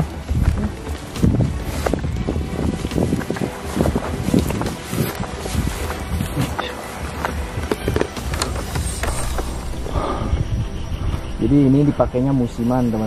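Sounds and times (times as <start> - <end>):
footsteps through dry grass: 0.0 - 9.9
wind rumbling on microphone: 0.0 - 13.0.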